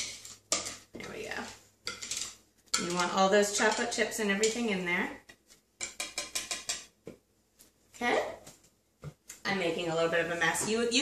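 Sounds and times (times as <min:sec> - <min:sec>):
utensil scraping mixing bowl: 0:00.0 - 0:04.9.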